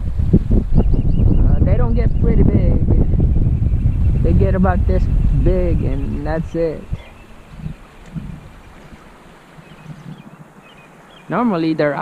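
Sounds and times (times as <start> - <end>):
wind noise on microphone: 0.0 - 11.4.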